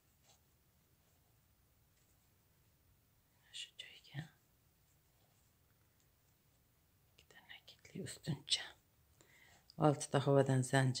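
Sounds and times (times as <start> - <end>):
person whispering: 3.4 - 4.5, 7.2 - 8.8.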